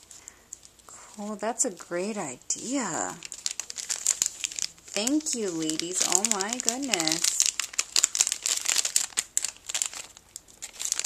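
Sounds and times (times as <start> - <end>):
cellophane bag crinkling: 0.0 - 11.0.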